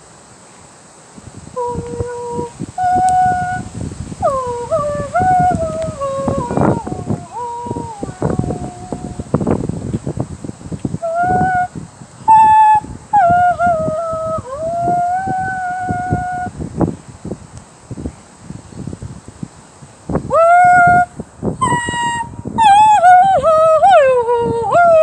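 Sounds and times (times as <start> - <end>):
high voice singing long notes: 1.4 - 9.8, 10.9 - 16.8, 20.2 - 25.0.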